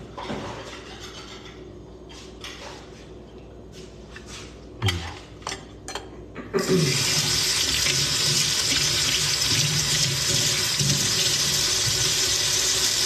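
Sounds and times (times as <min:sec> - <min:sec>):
tap water running into sink: 0:06.8 - 0:13.0.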